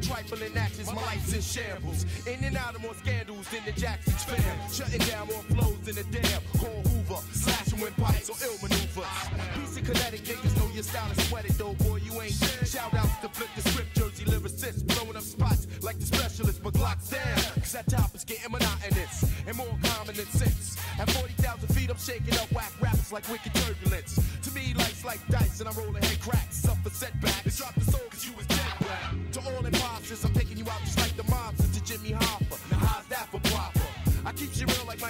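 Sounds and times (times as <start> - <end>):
deep heavy bass: 0.0 - 35.0
rapping over a drum beat: 0.0 - 35.0.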